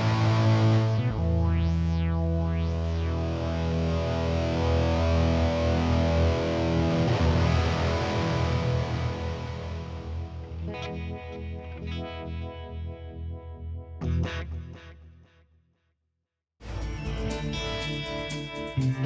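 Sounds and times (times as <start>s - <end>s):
electric guitar chords and notes: 0.0s - 15.2s, 16.6s - 19.0s.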